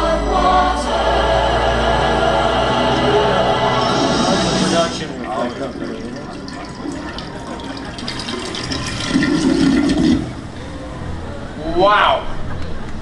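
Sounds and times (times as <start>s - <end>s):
crowd voices: 0.0s - 11.6s.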